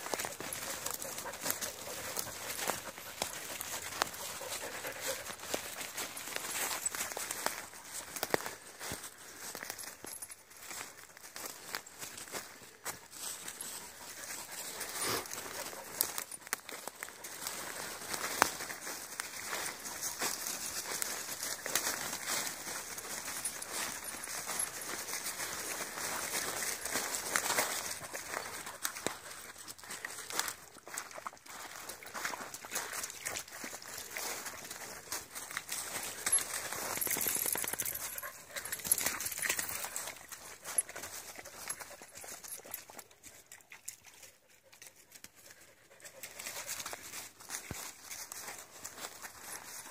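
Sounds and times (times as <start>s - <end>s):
footsteps crunching dry leaves: 0.0s - 43.2s, 45.0s - 49.9s
dog panting: 0.5s - 5.4s.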